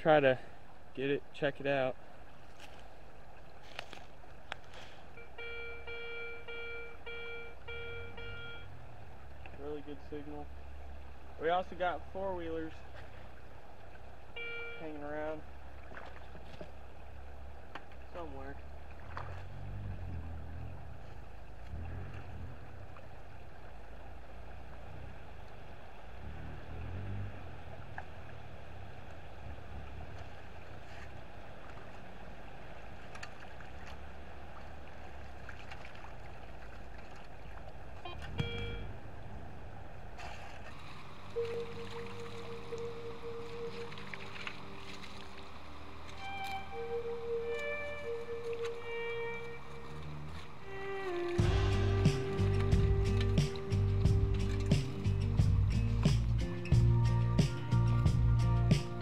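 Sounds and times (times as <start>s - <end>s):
flowing creek: 0.0s - 59.0s
metal detector beeps: 5.2s - 8.7s, 14.4s - 15.0s, 38.0s - 38.9s, 41.3s - 44.8s
warbling detector tones: 5.2s - 8.8s, 14.3s - 15.1s, 38.0s - 39.2s, 41.0s - 54.8s.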